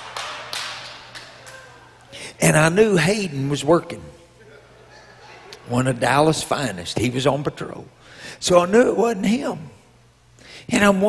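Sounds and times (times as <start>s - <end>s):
sharp claps echoing: 0.0s - 2.1s.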